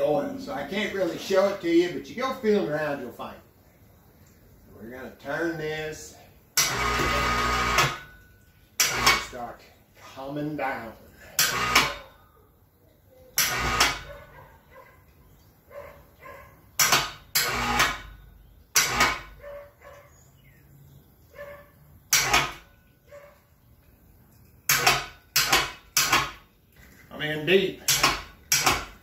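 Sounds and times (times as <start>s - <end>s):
metal clanks and clunks: 27.8s - 29.0s.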